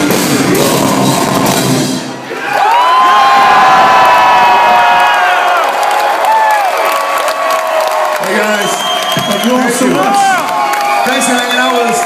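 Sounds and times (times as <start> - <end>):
live metal band: 0.0 - 2.2
concert crowd cheering: 0.6 - 12.0
high-pitched whoops and screams: 2.4 - 12.0.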